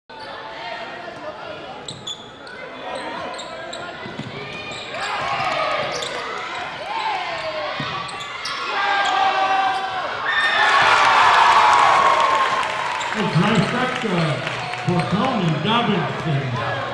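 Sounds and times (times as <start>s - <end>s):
sneaker squeaks: 1.8s - 10.0s.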